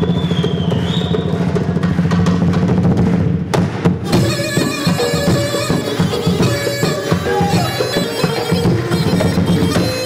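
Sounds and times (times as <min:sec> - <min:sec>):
fast dense drumming: 0:00.0 - 0:10.0
sharp hard drum strike: 0:00.0 - 0:10.0.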